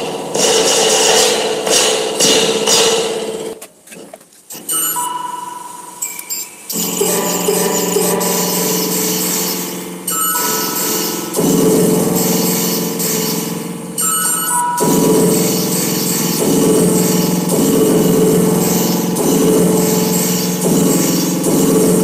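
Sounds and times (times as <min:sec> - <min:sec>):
buzzing electronic drone: 0:04.6 - 0:22.0
rattling spring reverb crashes: 0:06.7 - 0:22.0.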